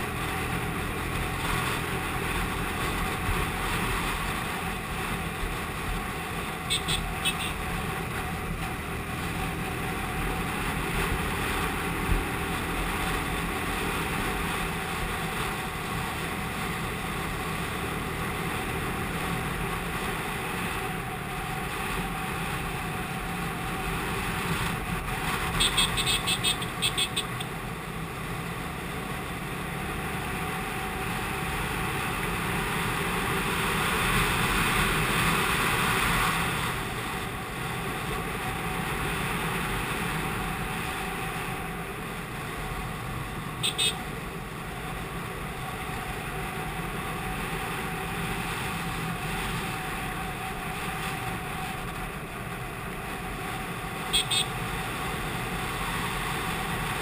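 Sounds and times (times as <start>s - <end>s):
motorcycle engine riding: 0.0s - 57.0s.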